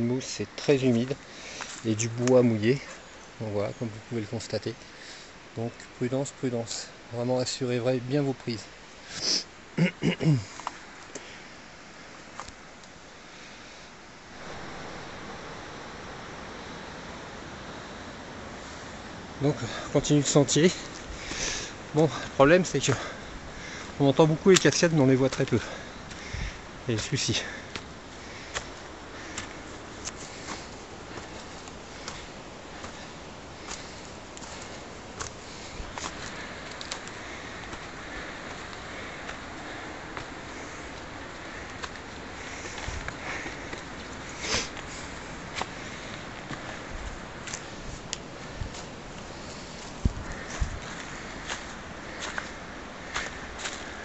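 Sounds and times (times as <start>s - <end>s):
quick breath: 1.2s - 1.8s, 20.8s - 21.8s, 23.0s - 24.0s, 25.6s - 26.7s, 42.4s - 46.9s
waterfalls rushing: 14.2s - 54.0s
footsteps on stones and dead leaves: 20.1s - 54.0s.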